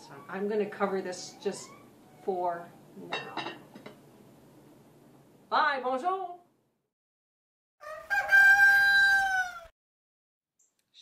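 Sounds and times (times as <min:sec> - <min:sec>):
rooster crowing: 0:07.8 - 0:09.7.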